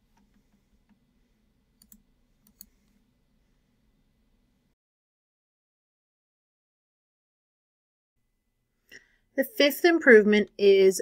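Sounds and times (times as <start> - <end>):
computer mouse clicks: 1.8 - 3.0.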